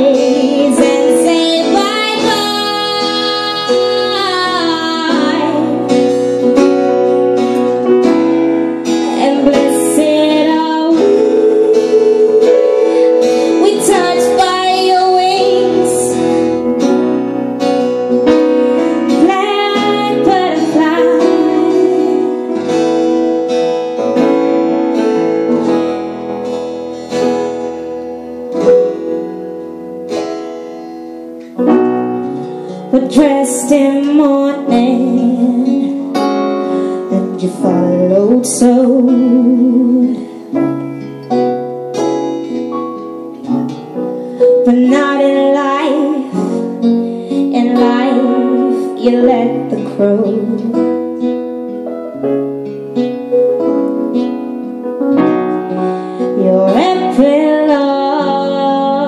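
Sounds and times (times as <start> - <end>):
woman singing: 0.0 - 6.8, 8.8 - 17.1, 19.0 - 23.2, 32.7 - 40.6, 44.4 - 51.3, 55.6 - 59.0
acoustic guitar: 0.0 - 59.0
piano: 0.0 - 59.0.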